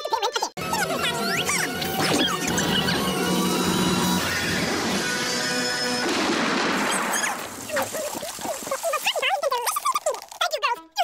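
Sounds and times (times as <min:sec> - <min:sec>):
cartoon music: 0:00.1 - 0:06.0
squealing sound effects: 0:00.6 - 0:06.1, 0:06.8 - 0:10.3
cartoon explosion burst: 0:06.0 - 0:08.7.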